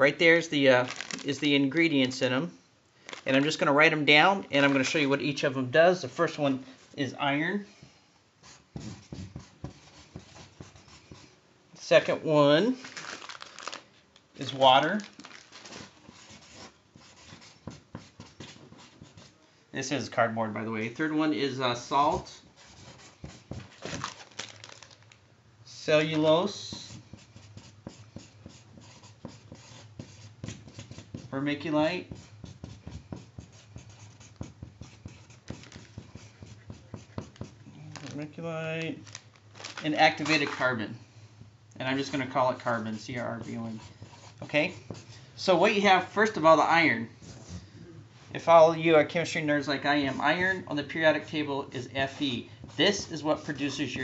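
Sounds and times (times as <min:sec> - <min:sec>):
marker scratching on cardboard: 0:08.4 - 0:11.4, 0:15.8 - 0:19.4, 0:22.1 - 0:23.7, 0:26.5 - 0:37.6, 0:42.1 - 0:45.2, 0:47.2 - 0:47.7, 0:51.8 - 0:54.0.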